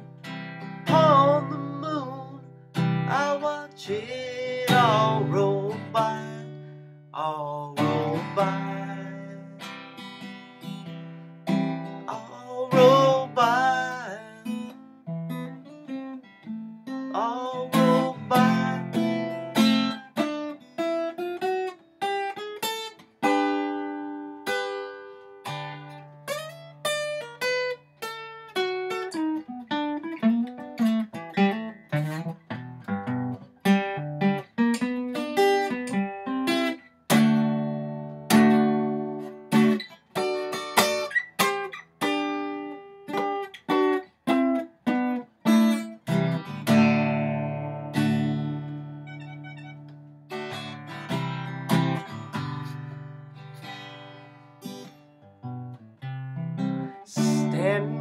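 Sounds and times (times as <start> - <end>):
acoustic guitar playing: 0.0 - 58.0.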